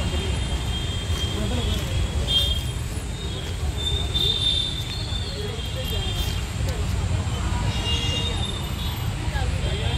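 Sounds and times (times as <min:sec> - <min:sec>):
road traffic rumble: 0:00.0 - 0:09.9.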